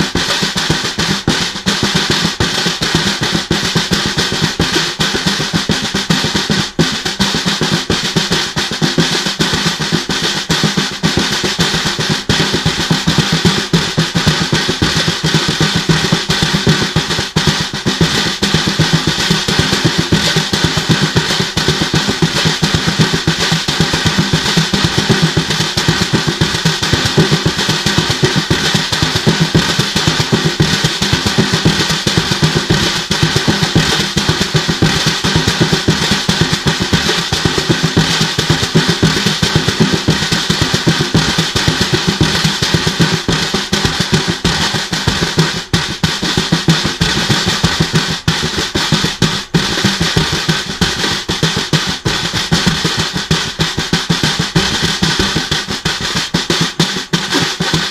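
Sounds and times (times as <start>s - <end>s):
snare drum played with hands: 0.0s - 57.9s.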